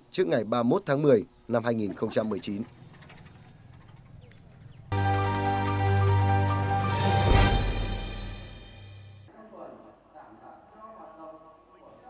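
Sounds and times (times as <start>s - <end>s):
faint village ambience: 0.0s - 5.0s
bird chirps: 3.1s - 5.0s
music: 4.9s - 9.3s.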